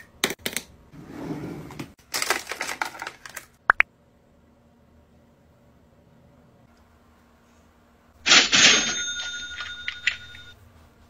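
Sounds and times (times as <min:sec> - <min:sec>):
cash register ka-ching: 0:08.3 - 0:10.6
bell tones ringing: 0:08.4 - 0:10.6.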